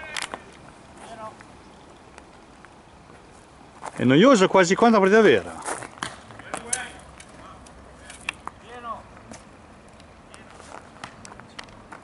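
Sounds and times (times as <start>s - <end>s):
people calling out: 0.0s - 1.4s
outdoor background: 0.0s - 12.0s.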